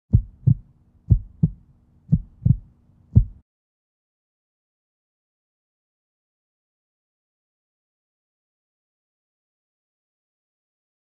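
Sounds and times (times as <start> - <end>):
faint low hum: 0.1 - 3.4
heartbeat thumps: 0.1 - 3.4.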